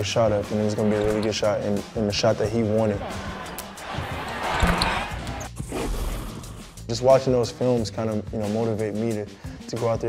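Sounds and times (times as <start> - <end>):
arena crowd noise: 0.5 - 1.4, 2.4 - 5.5.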